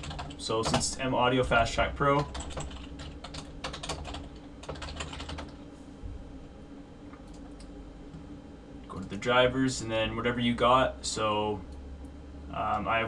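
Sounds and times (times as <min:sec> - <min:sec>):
typing on computer keyboard: 0:00.0 - 0:00.8, 0:02.2 - 0:05.6
low steady hum: 0:00.0 - 0:13.0.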